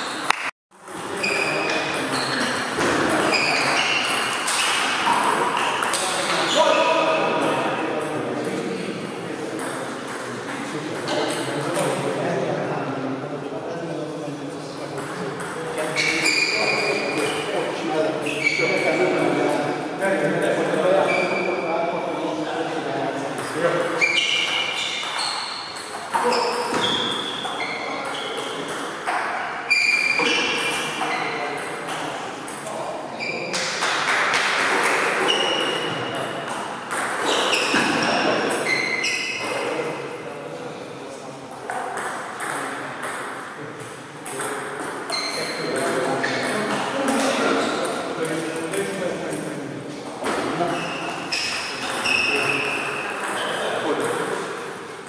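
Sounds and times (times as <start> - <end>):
table tennis ball pings: 34.4 - 39.4.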